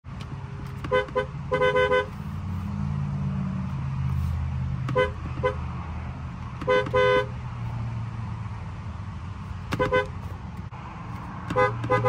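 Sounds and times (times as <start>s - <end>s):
two-tone car horn toots: 0.9s - 2.2s, 4.9s - 5.6s, 6.6s - 7.3s, 9.7s - 10.2s, 11.5s - 12.0s.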